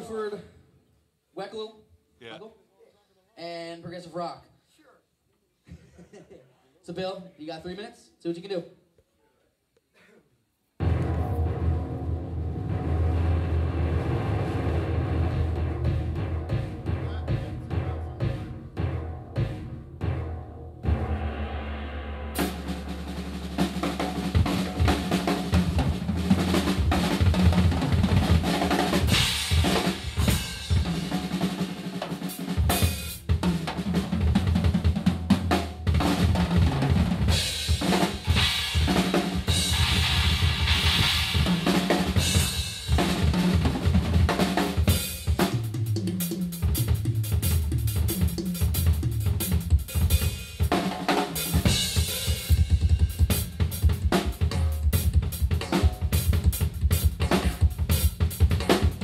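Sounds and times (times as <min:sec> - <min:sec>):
drum kit solo: 0:10.8 - 0:59.0.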